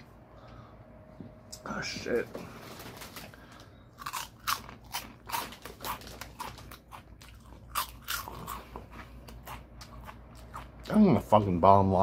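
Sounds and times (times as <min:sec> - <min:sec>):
person chewing crunchy snack: 0:03.6 - 0:11.0.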